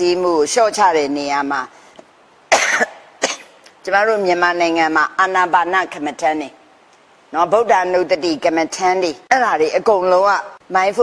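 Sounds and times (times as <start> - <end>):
woman coughing: 2.5 - 3.6.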